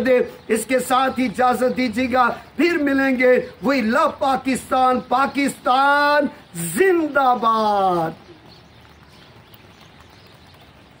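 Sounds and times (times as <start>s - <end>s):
light rain hiss: 7.7s - 11.0s
raindrop ticks: 8.2s - 11.0s.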